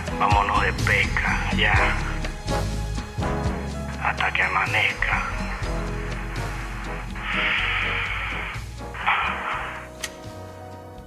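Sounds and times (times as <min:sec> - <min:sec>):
low music: 0:00.0 - 0:11.0
rushes of hiss: 0:06.2 - 0:10.0
sharp click: 0:10.0 - 0:10.3.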